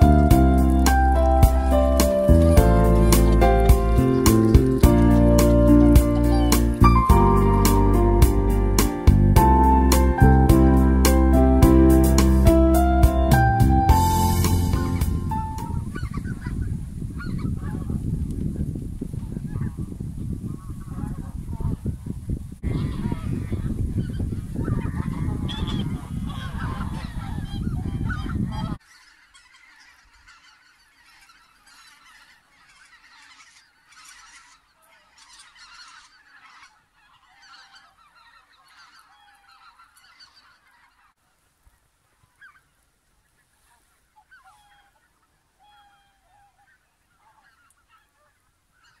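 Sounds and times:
geese honking: 0.0s - 16.6s, 22.7s - 41.2s, 42.2s - 49.0s
heavy low rumble: 0.0s - 18.6s.

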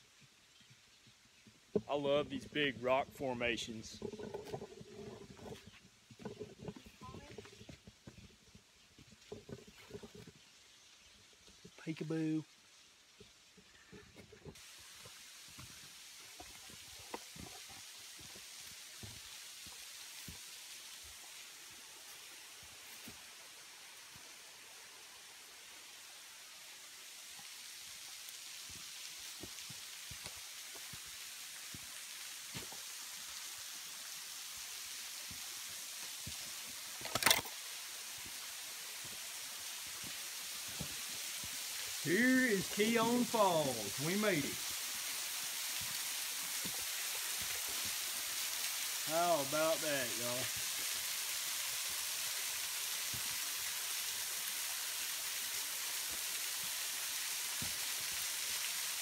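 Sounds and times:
waterfall hiss: 0.0s - 59.0s.

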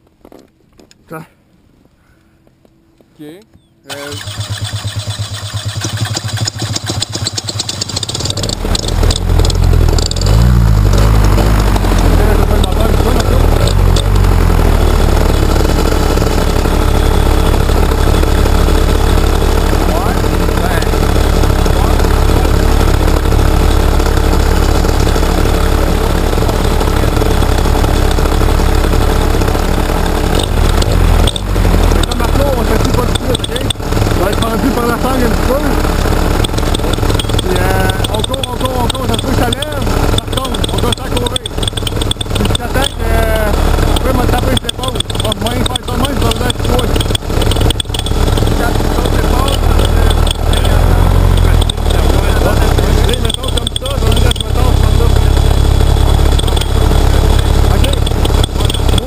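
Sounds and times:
paramotor engine running: 2.4s - 59.0s.

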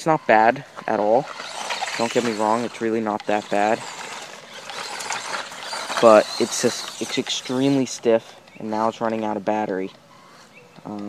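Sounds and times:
toy truck drivetrain whirring: 0.0s - 11.0s
small clicks: 0.8s - 11.0s.

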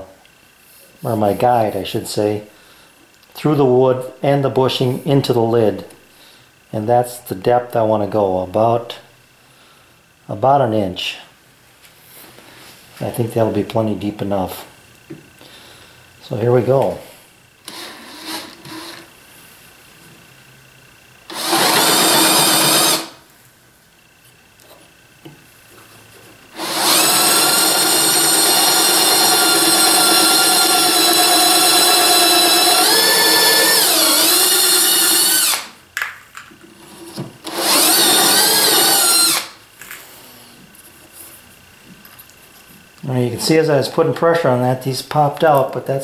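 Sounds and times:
cordless drill whining: 17.7s - 19.1s, 21.3s - 23.2s, 26.5s - 35.7s, 37.4s - 39.5s.

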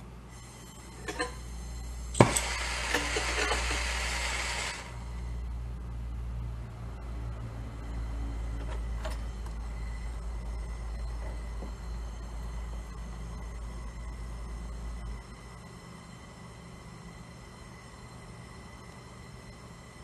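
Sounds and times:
gas hissing: 2.1s - 5.0s
gas torch igniting pop: 2.2s - 3.8s.

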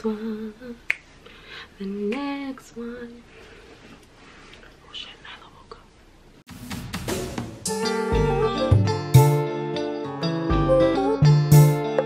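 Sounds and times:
woman whispering: 4.6s - 6.0s.

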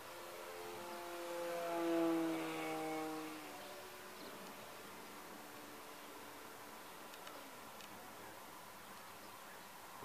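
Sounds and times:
electric motor and propeller whine: 0.0s - 9.4s.

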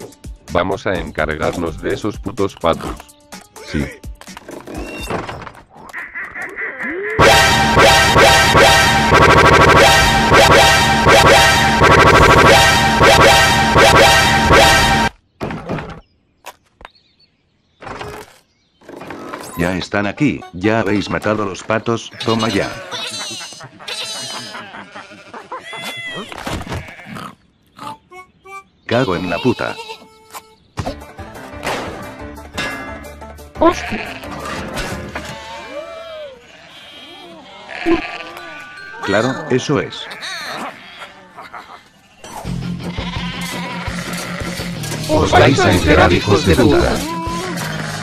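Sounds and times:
cartoon sheep bleating: 22.1s - 27.2s, 33.6s - 34.4s, 35.2s - 41.7s, 42.9s - 48.0s.

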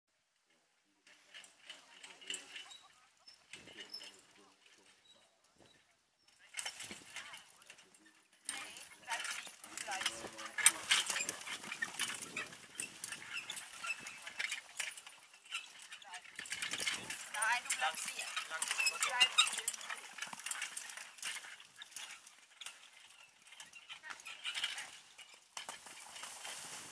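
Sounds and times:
carriage clattering: 1.0s - 26.9s
pony hoofbeats trotting: 1.1s - 26.9s
background voices: 7.1s - 12.6s, 16.0s - 20.1s.

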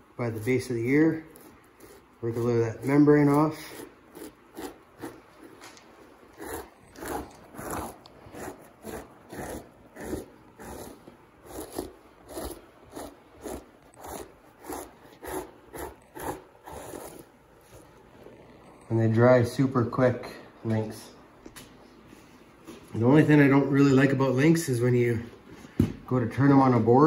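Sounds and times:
knife scraping membrane off pelt: 1.2s - 17.3s.

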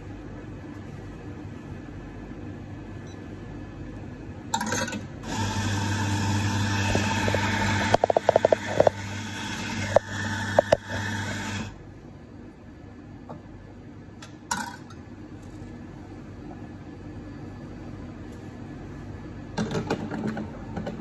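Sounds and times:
espresso machine pump hum: 5.2s - 11.9s.

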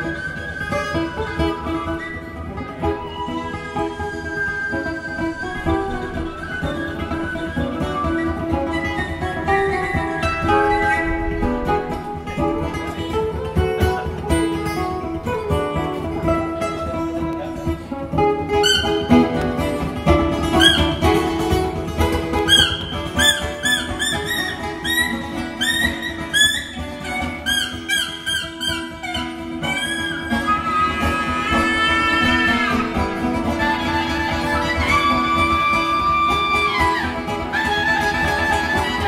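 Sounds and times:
acoustic guitars: 0.0s - 39.0s
wind instrument melody: 0.0s - 39.0s.

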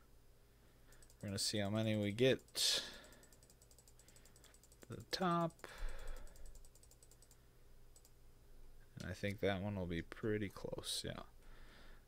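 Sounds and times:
low steady hum: 0.0s - 12.0s
computer mouse ticks: 0.9s - 7.4s, 8.0s - 8.2s.

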